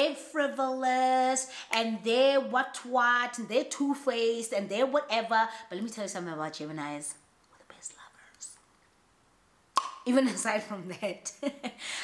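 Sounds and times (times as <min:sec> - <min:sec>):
woman whispering faintly: 0:07.6 - 0:08.6.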